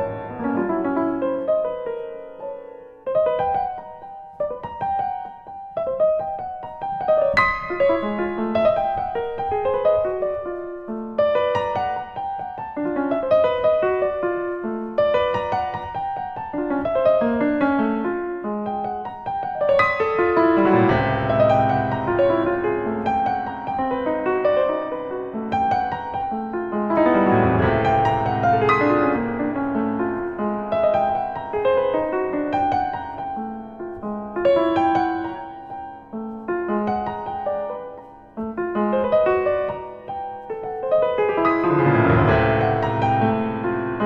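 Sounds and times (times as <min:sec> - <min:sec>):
solo piano playing: 0:00.0 - 0:44.0.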